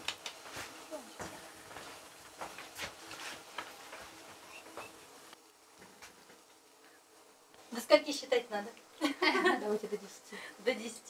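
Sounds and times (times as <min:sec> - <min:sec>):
footsteps on wooden floor: 0:00.4 - 0:04.9.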